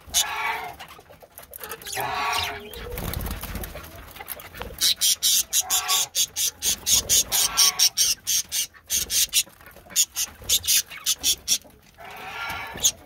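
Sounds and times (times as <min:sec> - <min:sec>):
budgerigars chattering: 0:01.6 - 0:03.0, 0:04.7 - 0:13.0.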